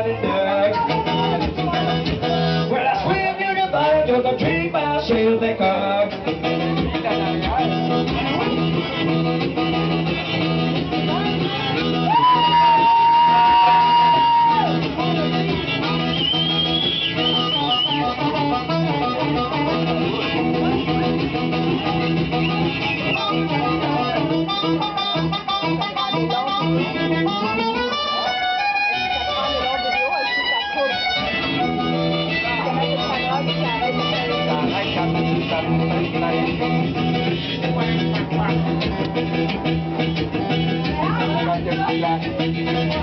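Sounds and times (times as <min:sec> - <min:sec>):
guitar accompaniment: 0:00.0 - 0:43.0
amplified blues harmonica: 0:00.5 - 0:03.7, 0:05.9 - 0:43.0.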